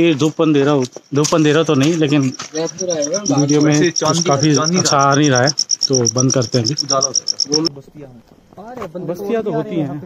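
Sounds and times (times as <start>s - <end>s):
cricket chirping: 0.0s - 10.0s
people talking loudly: 0.0s - 10.0s.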